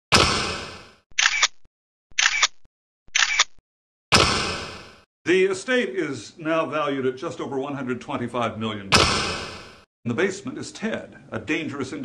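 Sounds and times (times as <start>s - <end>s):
sharp mechanical bursts: 1.2s - 3.6s.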